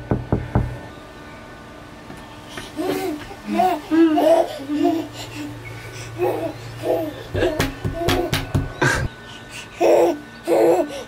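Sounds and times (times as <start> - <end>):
knocks on glass window: 7.4 - 8.8.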